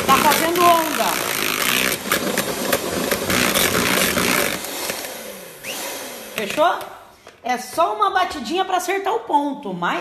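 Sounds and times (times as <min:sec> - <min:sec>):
electric mixer whipping cream: 0:00.0 - 0:06.8.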